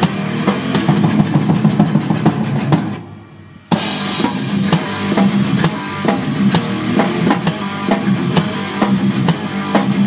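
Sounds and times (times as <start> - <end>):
bass guitar: 0.0 - 10.0
distorted electric guitar: 0.0 - 10.0
drum kit: 0.0 - 10.0.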